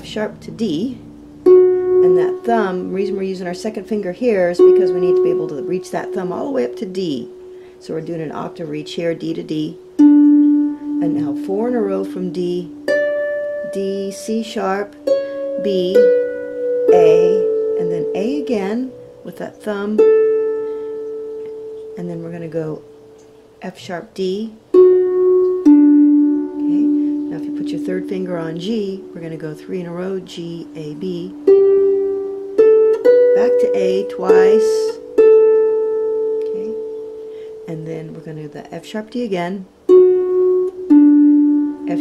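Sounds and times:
harp string plucked: 0.0 - 23.4, 24.7 - 38.3.

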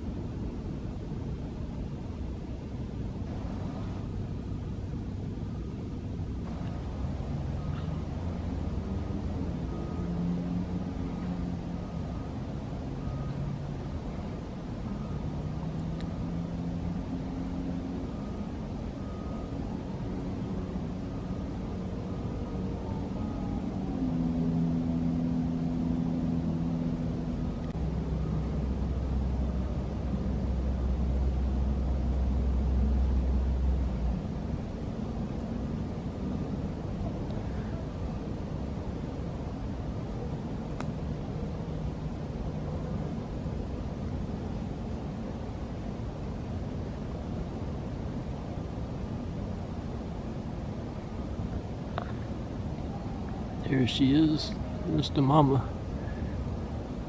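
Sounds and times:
distant vehicle engine drone: 0.0 - 57.0
faint high beep: 9.6 - 12.4, 13.0 - 13.6, 17.5 - 19.6.

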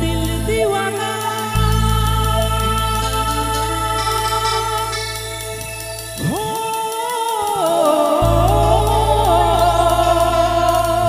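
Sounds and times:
low drone: 0.0 - 6.9, 7.5 - 11.0
man singing into microphone: 0.0 - 11.0.

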